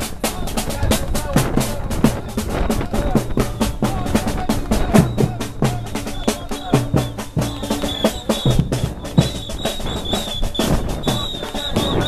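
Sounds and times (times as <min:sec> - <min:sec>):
drums and percussion beat: 0:00.0 - 0:12.0.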